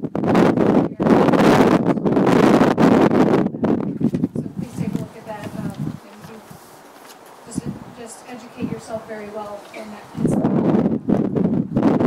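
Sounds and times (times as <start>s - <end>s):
quiet speech: 4.3s - 6.5s.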